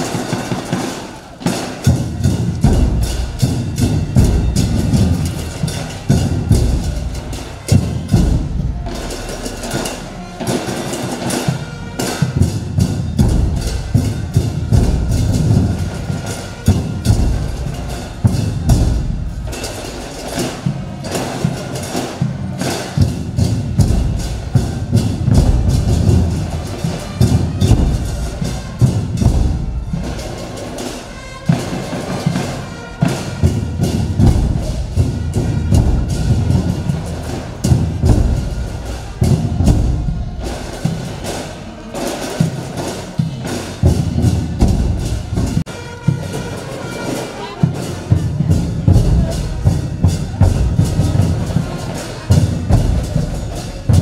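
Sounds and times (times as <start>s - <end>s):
drum and percussion music: 0.0s - 54.0s.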